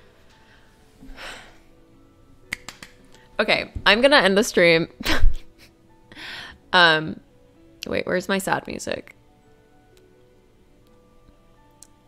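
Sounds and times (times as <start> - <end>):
faint background music: 0.0 - 12.0
hand claps: 2.5 - 3.0.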